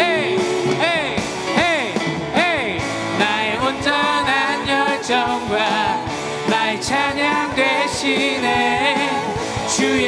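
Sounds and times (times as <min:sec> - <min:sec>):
praise band with acoustic guitar: 0:00.0 - 0:10.0
singers: 0:00.0 - 0:10.0.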